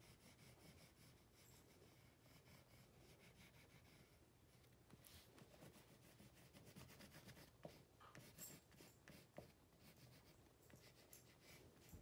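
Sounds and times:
oil pastel scratching on paper: 0.0s - 11.9s.

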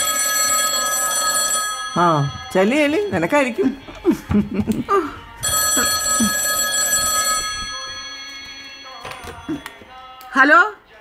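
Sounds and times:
telephone bell ringing: 0.0s - 3.4s, 5.4s - 9.5s.

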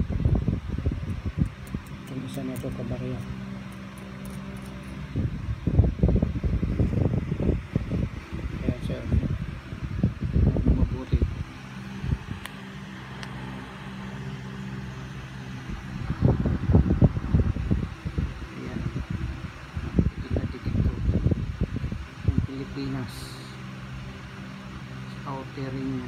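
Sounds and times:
steady low hum: 0.0s - 26.0s
fingers handling a coin: 1.5s - 5.0s.

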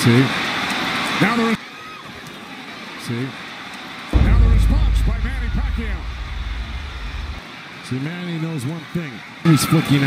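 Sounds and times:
arena crowd murmur: 0.0s - 4.5s
low rumble: 4.2s - 7.4s.

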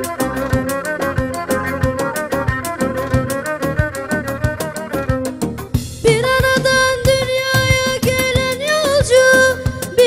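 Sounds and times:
bowed fiddle folk melody: 0.0s - 7.8s
steady percussive beat: 0.0s - 10.0s.

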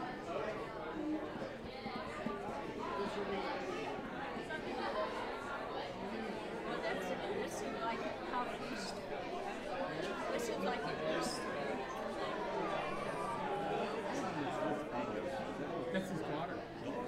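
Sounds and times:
crowd chatter in a large hall: 0.0s - 17.0s.

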